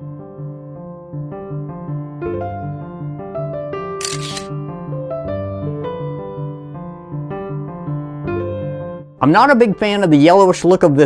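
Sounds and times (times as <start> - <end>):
camera shutter sound effect: 4.0 - 4.5.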